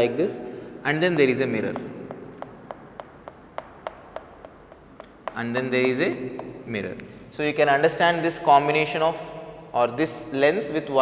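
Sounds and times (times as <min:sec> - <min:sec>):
chalk tapping on chalkboard: 0:01.4 - 0:07.0.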